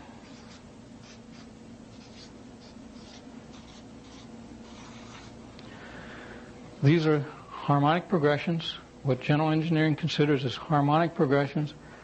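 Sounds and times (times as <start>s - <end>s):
faint steady hum: 0.0s - 12.0s
pen scratching on board: 0.3s - 5.3s.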